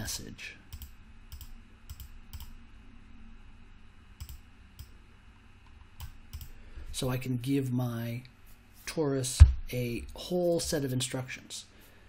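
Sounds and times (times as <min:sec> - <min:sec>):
computer clicks: 0:00.7 - 0:02.6, 0:04.2 - 0:05.0, 0:05.6 - 0:06.6.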